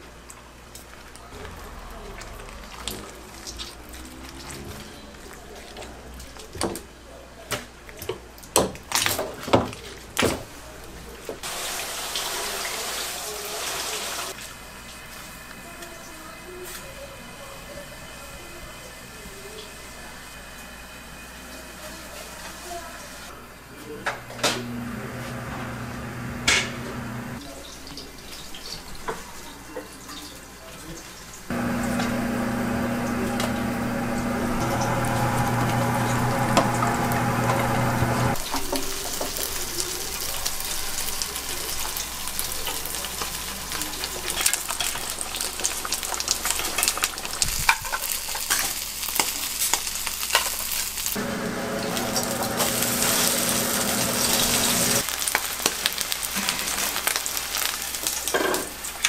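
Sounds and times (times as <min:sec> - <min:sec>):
food sizzling in pans: 0:00.9 - 0:05.7, 0:11.4 - 0:17.0, 0:31.0 - 0:59.0
utensils clinking on cookware: 0:38.3 - 0:50.7.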